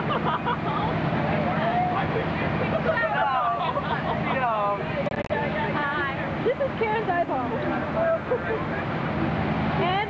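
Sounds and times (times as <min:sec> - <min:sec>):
voices talking: 0:00.6 - 0:10.0.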